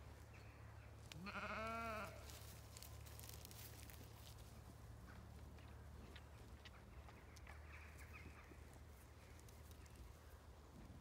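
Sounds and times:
sheep bleating: 1.1 - 2.3.

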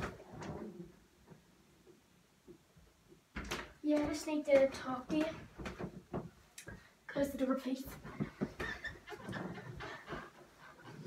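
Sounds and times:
wooden door closing: 3.4 - 6.4.

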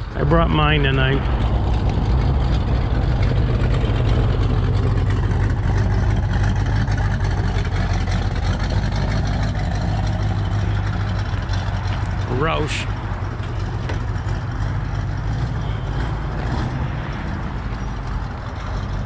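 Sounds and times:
car engine idling: 0.0 - 19.0.

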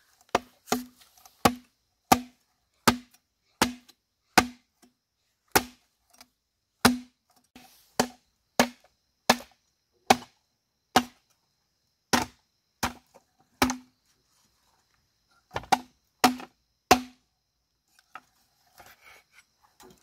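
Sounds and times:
machete chopping bamboo: 0.2 - 4.9, 5.5 - 11.3, 12.1 - 13.9, 15.5 - 17.2.

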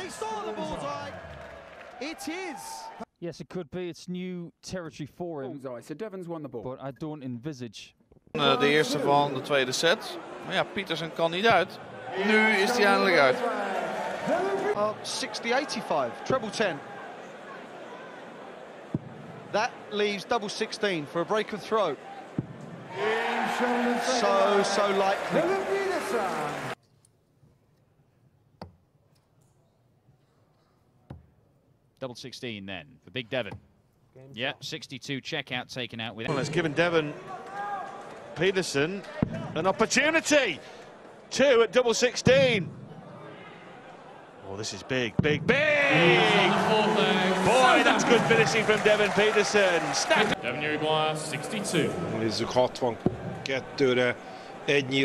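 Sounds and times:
commentator speaking: 8.4 - 13.7, 23.0 - 26.8, 44.5 - 55.0.

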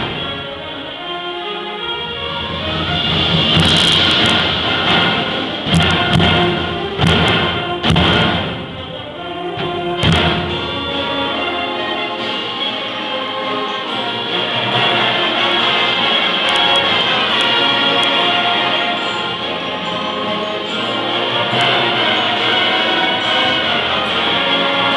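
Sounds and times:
heavy percussion hits: 0.0 - 0.8, 1.9 - 11.5
concert band playing: 0.0 - 24.9.

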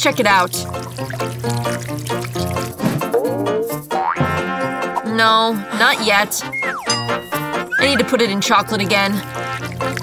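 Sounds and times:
background music with steady beat: 0.8 - 8.3
pitch-bending sound effect: 6.4 - 8.1
rising gliding sound effect: 6.5 - 7.1.

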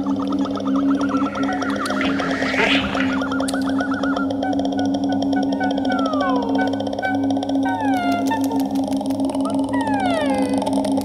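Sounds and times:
voice tones sliding downward: 0.0 - 10.8
pulsing low drone: 0.0 - 11.0.

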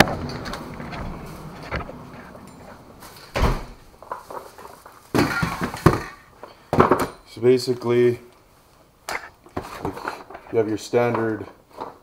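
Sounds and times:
rustling: 0.0 - 6.6
clatters of objects: 0.0 - 7.3, 9.1 - 12.0.

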